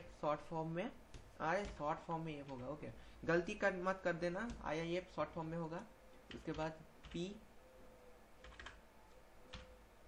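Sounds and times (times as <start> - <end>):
faint keyboard keystrokes: 8.4 - 8.8.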